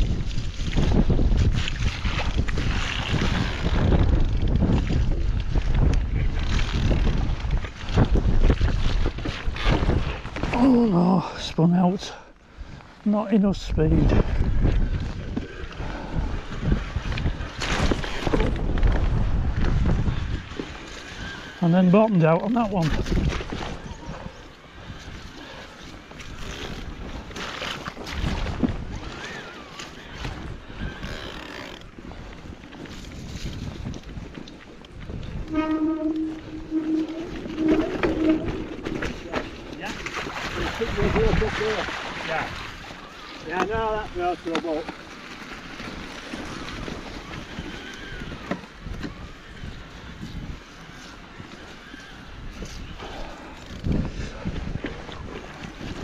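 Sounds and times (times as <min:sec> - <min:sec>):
bike rattling over rough track: 0:00.0 - 0:10.9, 0:13.5 - 0:56.0
wind buffeting microphone: 0:00.0 - 0:56.0.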